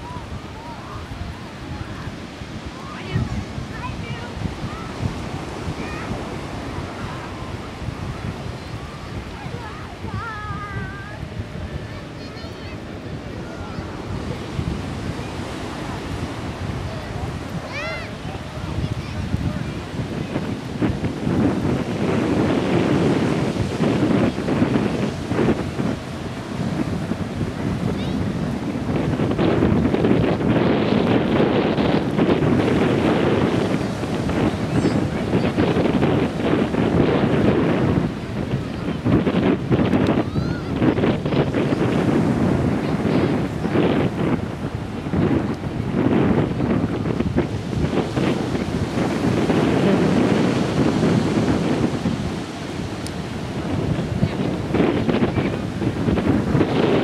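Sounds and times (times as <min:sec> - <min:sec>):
small waves breaking on shore: 0:00.0 - 0:57.0
wind rumbling on microphone: 0:00.0 - 0:57.0.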